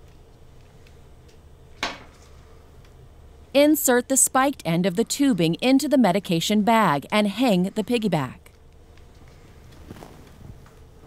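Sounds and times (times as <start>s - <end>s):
low steady room hum: 0.0s - 11.0s.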